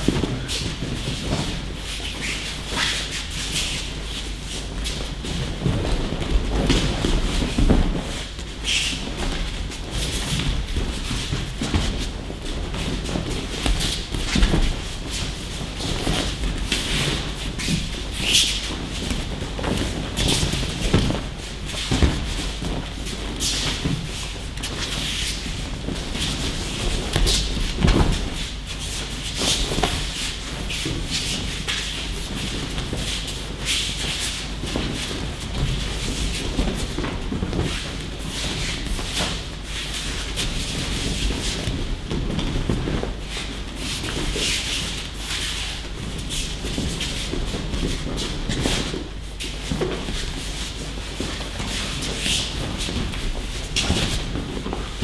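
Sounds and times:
bare feet shuffling: 0:00.0 - 0:55.0
cloth swishing: 0:00.0 - 0:55.0
bodies thudding on mats: 0:04.2 - 0:39.5.

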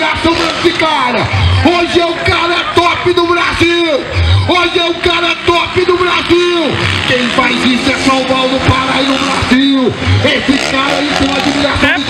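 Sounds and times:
man announcing over loudspeakers: 0:00.0 - 0:12.0.

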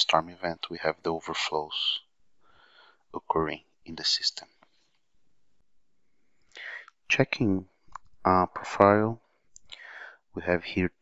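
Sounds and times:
short breath in: 0:02.4 - 0:03.0, 0:06.5 - 0:06.9, 0:09.7 - 0:10.2.

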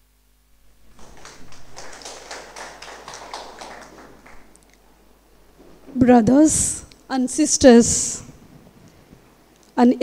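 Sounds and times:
audience applause: 0:00.9 - 0:04.6.

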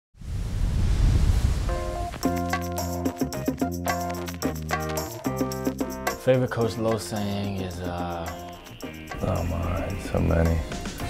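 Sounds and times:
noisy whoosh with bass rumble: 0:00.2 - 0:02.2.

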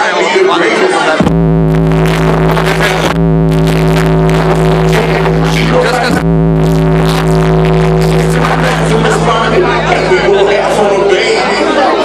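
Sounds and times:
crowd noise: 0:00.0 - 0:12.0
loud steady bass note: 0:01.2 - 0:11.5.

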